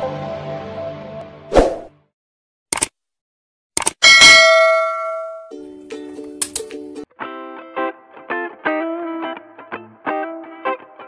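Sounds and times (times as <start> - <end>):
bell ding: 4.0 - 5.5
guitar background music: 5.4 - 11.0.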